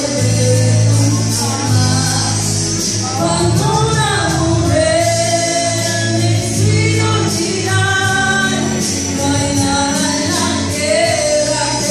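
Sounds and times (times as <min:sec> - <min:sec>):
music backing track: 0:00.0 - 0:11.9
woman singing karaoke: 0:00.0 - 0:11.9.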